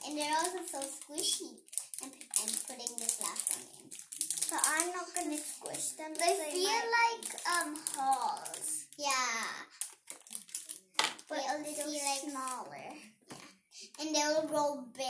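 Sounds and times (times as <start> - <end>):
clicks and rustles of slime: 0.0 - 13.6
girls talking and exclaiming: 4.5 - 9.7, 11.3 - 13.0, 14.0 - 15.0.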